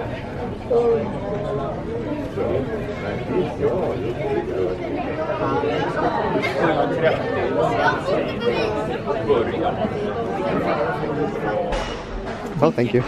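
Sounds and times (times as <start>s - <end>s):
babble of many people talking: 0.0s - 13.0s.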